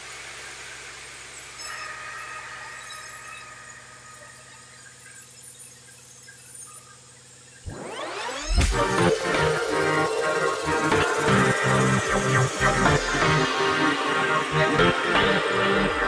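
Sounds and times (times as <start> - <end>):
band saw humming: 1.2 - 16.0
saw blade squealing through log: 1.4 - 8.6.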